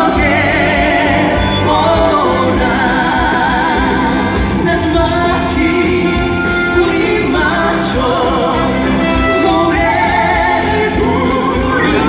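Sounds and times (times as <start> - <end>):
backing band with low beat: 0.0 - 12.0
woman singing with heavy vibrato: 0.0 - 12.0.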